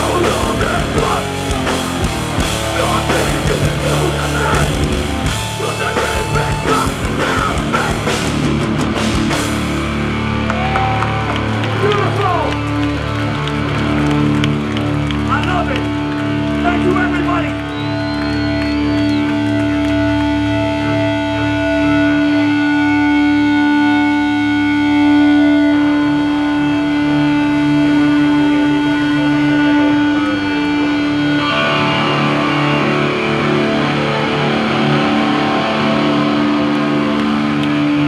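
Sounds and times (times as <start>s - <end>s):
distorted electric guitars ringing: 0.0s - 38.0s
noisy guitar wash: 0.0s - 38.0s.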